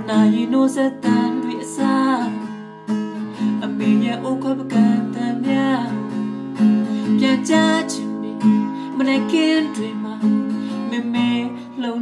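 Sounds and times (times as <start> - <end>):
man singing: 0.0 - 2.4, 3.6 - 6.2, 7.0 - 12.0
acoustic guitar strumming: 0.0 - 12.0.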